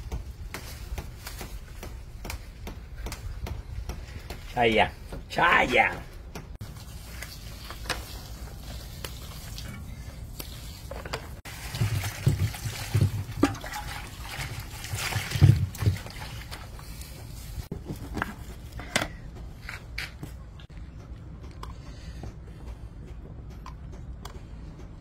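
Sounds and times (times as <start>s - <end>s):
water pouring from clay pot: 11.4s - 16.9s.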